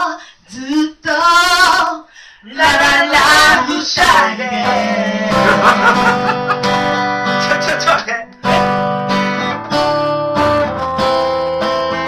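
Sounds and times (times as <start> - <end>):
woman singing a cappella: 0.0 - 5.6.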